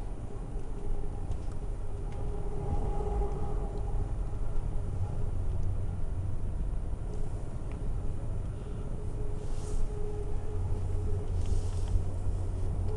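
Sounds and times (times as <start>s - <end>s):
faint steady hum: 0.0s - 12.9s
train wheels rumbling on rail: 0.0s - 12.9s.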